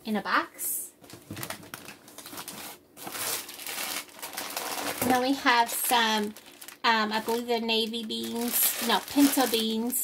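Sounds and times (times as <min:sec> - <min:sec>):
food packaging crinkling: 0:01.0 - 0:10.0.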